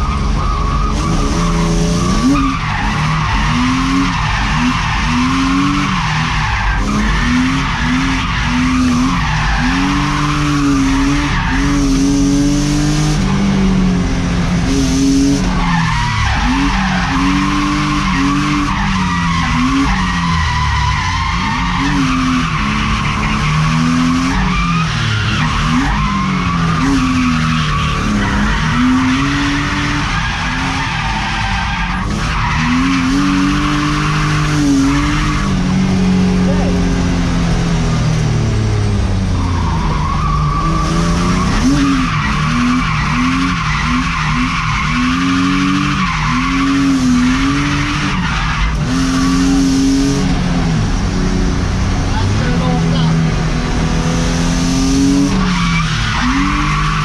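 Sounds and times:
car engine revving: 0:00.0 - 0:57.0
tyres squealing: 0:55.2 - 0:57.0.

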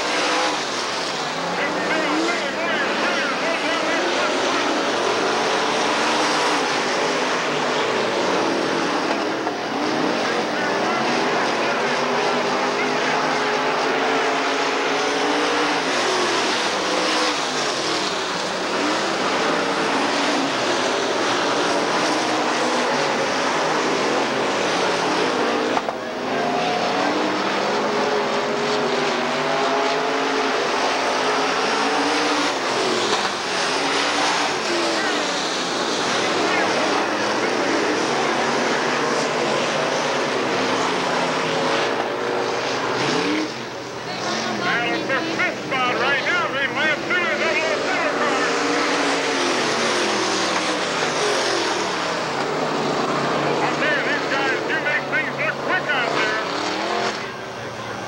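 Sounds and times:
race car engines roaring: 0:00.0 - 0:58.0.

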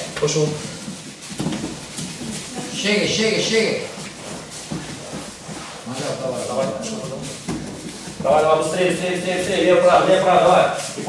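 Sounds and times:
indistinct background voices: 0:01.9 - 0:11.0.

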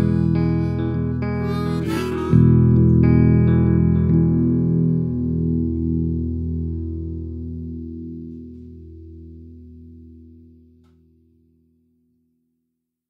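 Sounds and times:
guitar chord ringing: 0:00.0 - 0:11.0.

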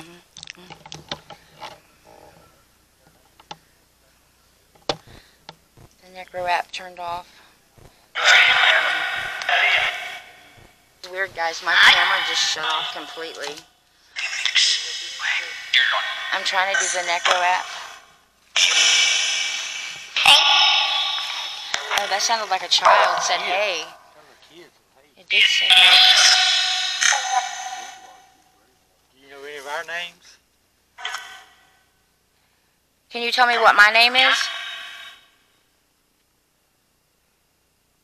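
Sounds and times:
garbled radio-like sound with reverb: 0:01.0 - 0:29.8, 0:31.0 - 0:31.8, 0:33.1 - 0:35.4
held tone: 0:18.6 - 0:24.2.

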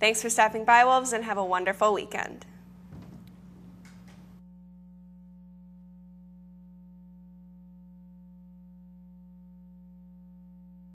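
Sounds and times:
low electrical hum: 0:00.0 - 0:10.9.

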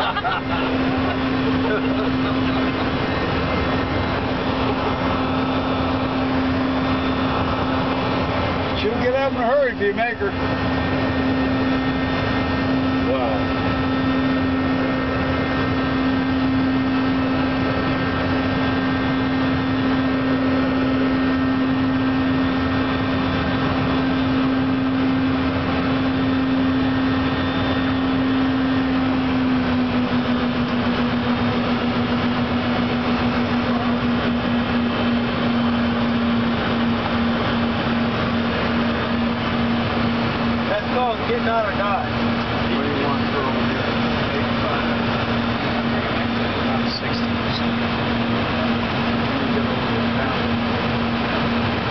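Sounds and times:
jet engine and airflow noise: 0:00.0 - 0:51.9
low pulsing hum: 0:00.0 - 0:51.9.

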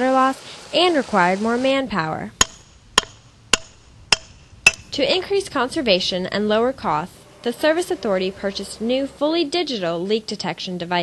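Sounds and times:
sharp ringing knocks: 0:02.4 - 0:05.0.

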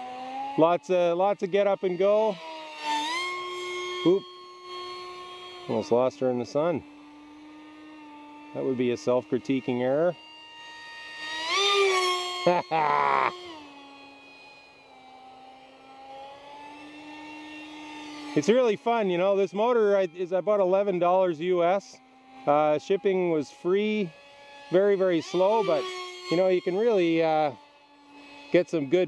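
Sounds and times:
electric model jet motor whine: 0:00.0 - 0:29.0.

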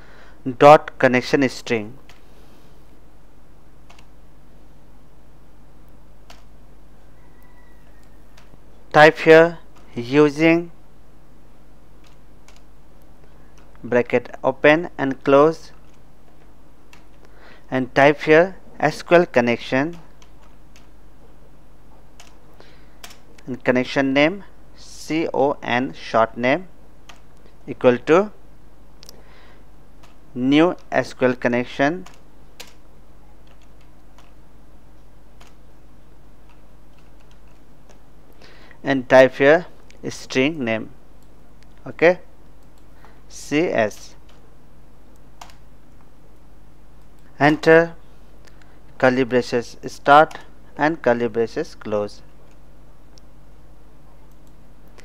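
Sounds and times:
low steady hum: 0:00.0 - 0:55.0
computer keyboard clicks: 0:03.9 - 0:04.1, 0:22.2 - 0:22.4
computer keyboard keystrokes: 0:03.9 - 0:04.1, 0:19.9 - 0:20.9, 0:22.2 - 0:22.4.

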